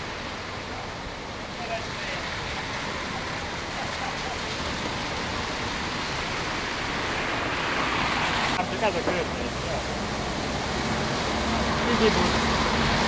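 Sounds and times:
tyres running through water: 0.0s - 13.0s.

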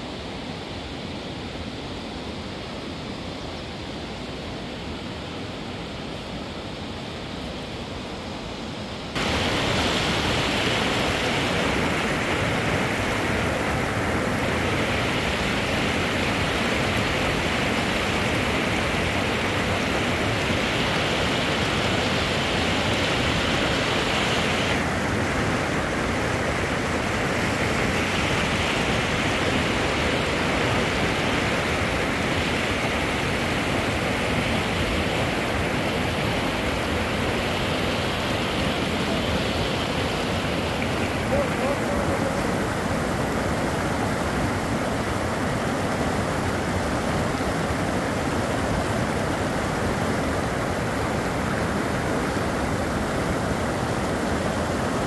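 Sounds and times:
stream rushing over rocks: 0.0s - 55.0s.

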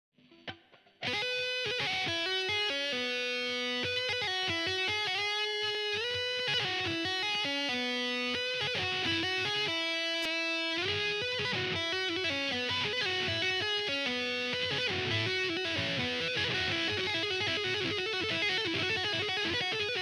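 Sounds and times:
distorted electric guitar solo: 0.2s - 20.0s.

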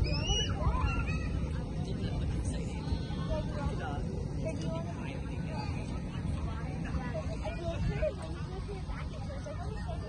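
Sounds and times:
people squealing: 0.0s - 1.5s
steady low rumble: 0.0s - 10.0s.

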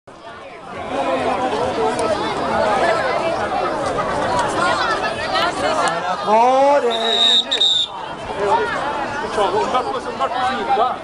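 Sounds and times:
crowd chattering: 0.1s - 11.0s.

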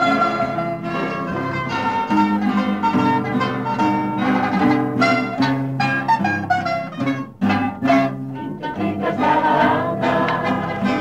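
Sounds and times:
mandolin ensemble: 0.0s - 11.0s
mixed choir singing: 7.6s - 11.0s.

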